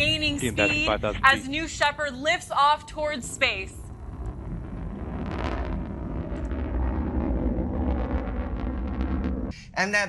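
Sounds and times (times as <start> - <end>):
rocket engine rumbling: 0.0 - 9.6.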